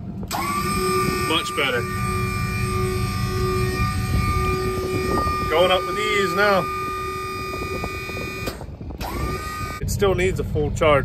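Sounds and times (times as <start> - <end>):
electric hydraulic pump whining: 0.2 - 9.8.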